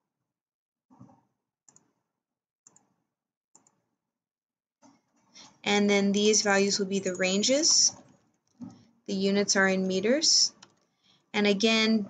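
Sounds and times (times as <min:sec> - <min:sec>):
computer mouse clicks: 0:00.9 - 0:02.0, 0:02.6 - 0:03.0, 0:03.6 - 0:03.9, 0:07.6 - 0:08.9, 0:10.5 - 0:11.3.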